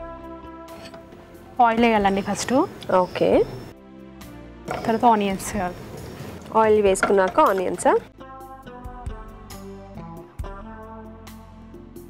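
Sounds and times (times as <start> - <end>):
woman speaking: 1.6 - 3.6, 4.7 - 5.8, 6.5 - 8.1.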